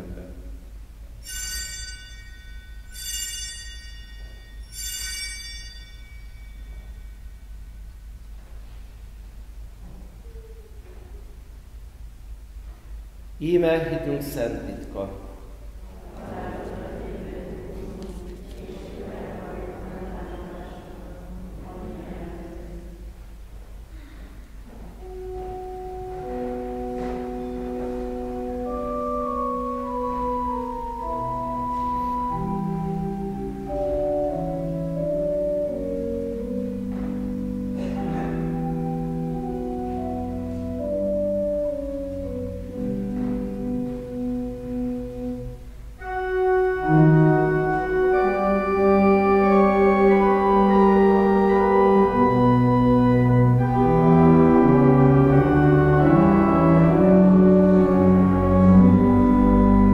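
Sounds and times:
organ playing sustained chord: 0.0 - 12.6, 13.3 - 59.9
altar bells chiming: 1.2 - 7.7.

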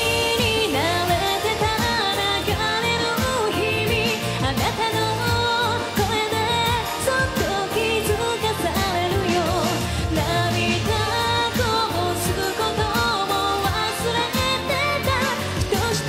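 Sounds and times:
woman singing pop song: 0.0 - 16.0.

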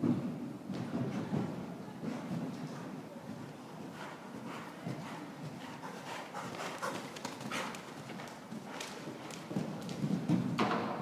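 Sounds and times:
horse hoofbeats on sand: 0.7 - 10.6.

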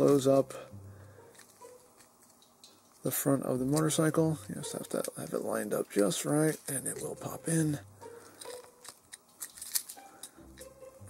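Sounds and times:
plastic toy clicks and creaks: 8.3 - 10.7
plastic parts popping into place: 8.4 - 10.7.

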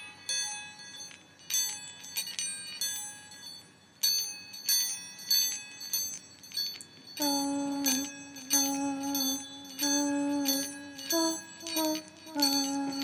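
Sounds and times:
bells ringing: 0.0 - 13.0.

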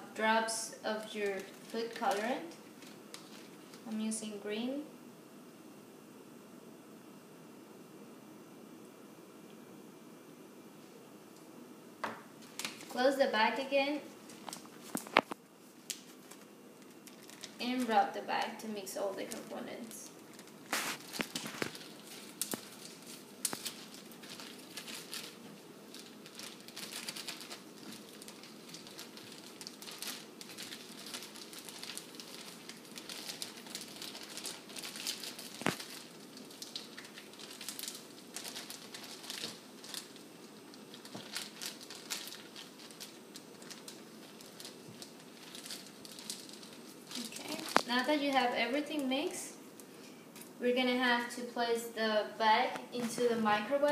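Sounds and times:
plastic bag crinkling: 0.9 - 4.1, 12.4 - 49.4.

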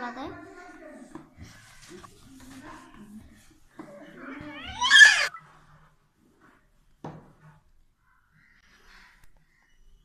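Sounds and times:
high-pitched vocal cry: 4.2 - 5.4.

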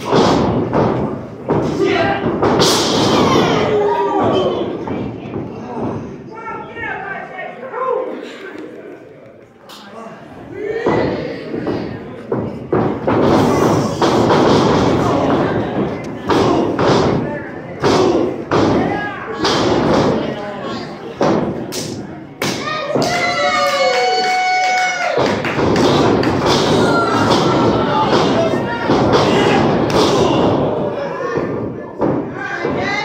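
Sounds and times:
people shouting: 26.5 - 31.6.

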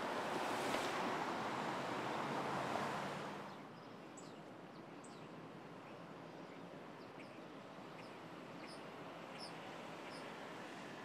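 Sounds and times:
road traffic rushing past: 0.0 - 3.5.

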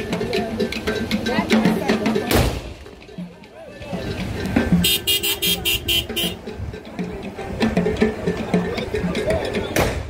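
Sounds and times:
crowd noise: 0.0 - 10.0
vehicle horn short toots: 4.8 - 6.4.

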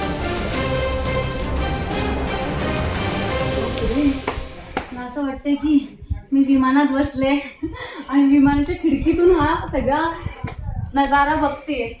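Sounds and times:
background music: 0.0 - 6.0
woman speaking: 3.6 - 4.3, 4.9 - 12.0.

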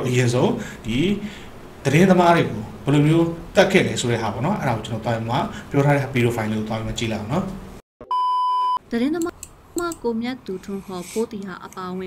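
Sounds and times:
man talking: 0.0 - 7.6
censor bleep: 8.0 - 8.8.

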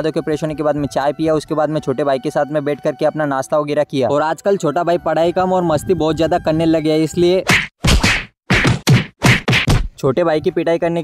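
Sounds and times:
loud slapping whacks: 7.4 - 10.0.

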